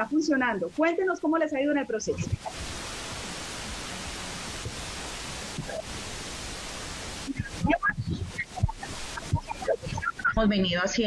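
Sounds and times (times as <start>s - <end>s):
broken voice fragments: 0.0s - 6.5s, 7.1s - 11.0s
steady audio feed hiss: 0.0s - 11.0s.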